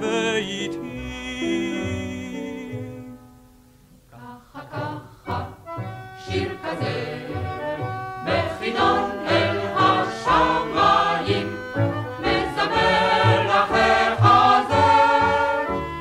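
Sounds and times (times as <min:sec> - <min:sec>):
choir singing with instruments: 0:04.1 - 0:16.0.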